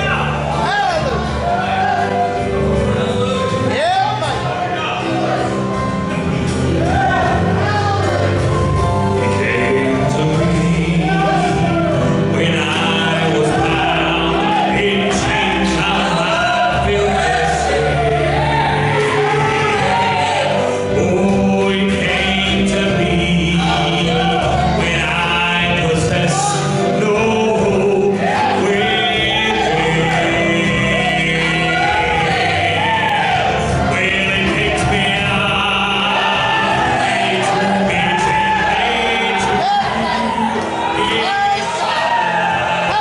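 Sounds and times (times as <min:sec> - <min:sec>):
guitar: 0:00.0 - 0:43.0
men singing in harmony: 0:00.0 - 0:43.0.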